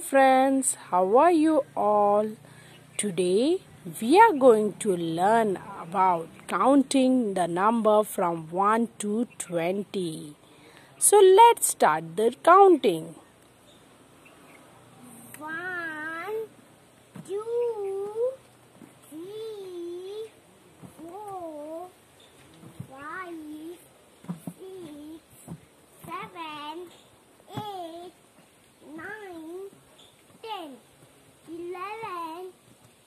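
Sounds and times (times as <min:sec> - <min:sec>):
child calling out sing-song: 0:15.4 - 0:16.5.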